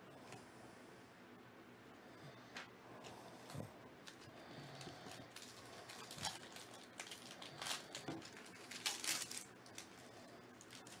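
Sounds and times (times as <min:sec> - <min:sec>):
foil wrapper crinkling and tearing: 0:04.0 - 0:11.0.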